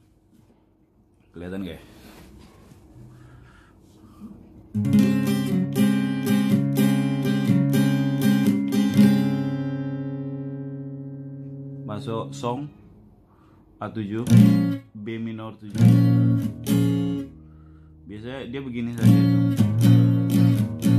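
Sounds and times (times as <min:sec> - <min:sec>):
acoustic guitar chord strumming: 0:04.7 - 0:12.8, 0:14.2 - 0:18.0, 0:18.6 - 0:20.9.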